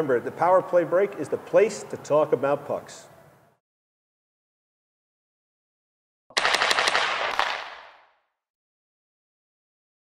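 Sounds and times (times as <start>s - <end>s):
sharp cracks: 6.3s - 8.3s.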